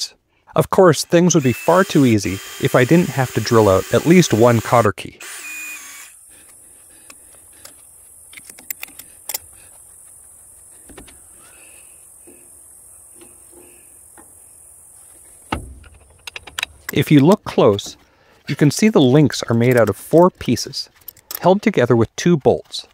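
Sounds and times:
electric drill whine: 1.3s - 15.4s
loud thump: 15.5s - 16.0s.

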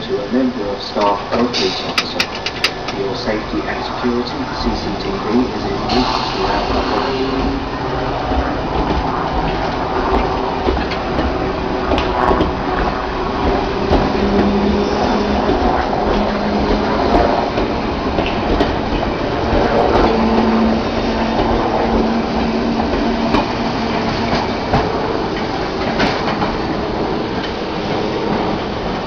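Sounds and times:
wheels clattering over rail joints: 0.0s - 6.4s
train rumbling past: 0.0s - 29.0s.

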